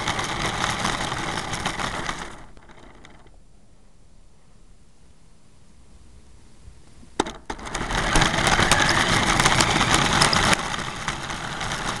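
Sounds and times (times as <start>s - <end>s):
toy car motor running: 7.6s - 12.0s.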